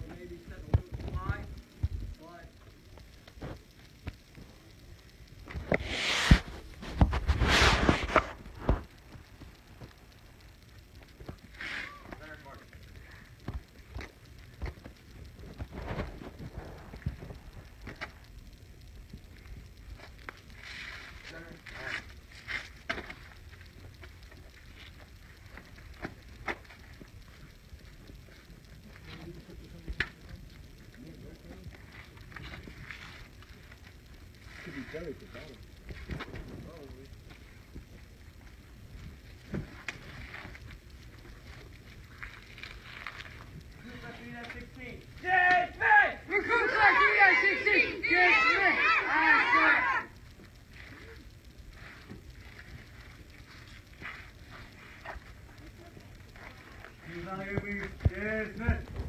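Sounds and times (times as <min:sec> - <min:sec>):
low rumble with crackles: 0:00.0 - 0:59.0.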